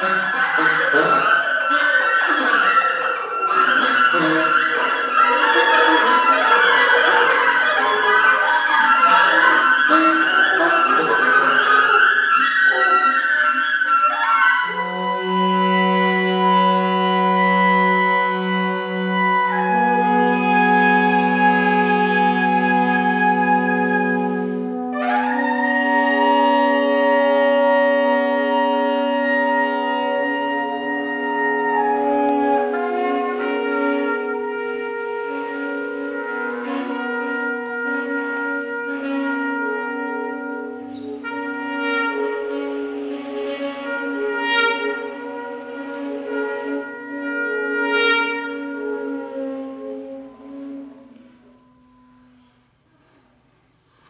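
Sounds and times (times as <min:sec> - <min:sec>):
brass and wind ensemble chords: 0:00.0 - 0:53.2.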